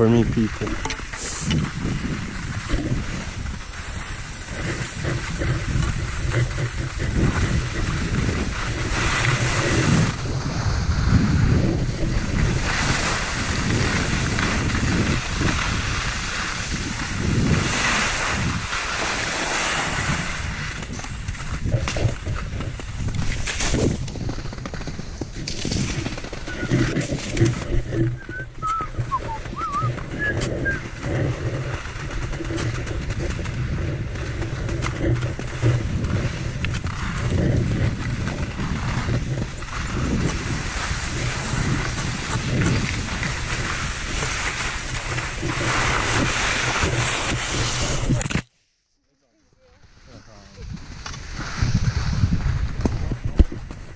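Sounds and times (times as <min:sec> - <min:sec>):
skis scraping over wet snow: 0:00.0 - 0:48.5, 0:49.6 - 0:53.9
wind on microphone: 0:00.0 - 0:48.5, 0:49.8 - 0:53.9.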